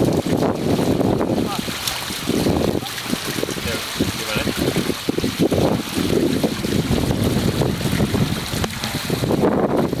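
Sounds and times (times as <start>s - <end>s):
water rushing past hulls: 0.0s - 10.0s
wind buffeting microphone: 0.0s - 10.0s.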